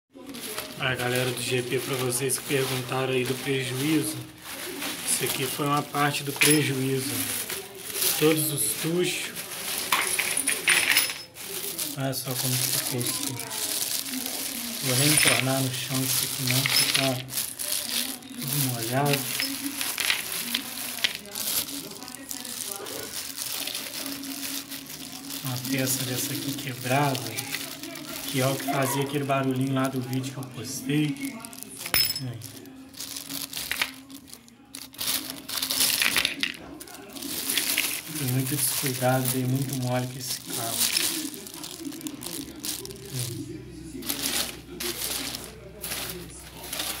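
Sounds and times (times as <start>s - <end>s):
plastic bag crinkling: 0.2s - 47.0s
small metal parts clinking: 6.2s - 7.5s, 9.6s - 11.5s, 14.8s - 17.5s, 18.6s - 21.2s, 31.1s - 34.1s, 34.8s - 36.6s, 37.3s - 39.4s, 40.7s - 41.2s.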